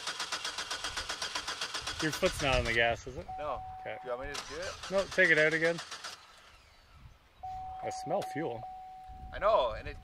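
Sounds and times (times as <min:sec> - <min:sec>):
car warning tone: 0:03.2 - 0:04.3, 0:07.4 - 0:09.4.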